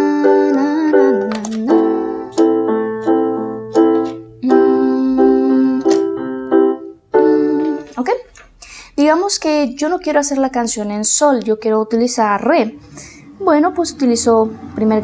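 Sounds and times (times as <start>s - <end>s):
electronic piano chords: 0.0s - 8.2s.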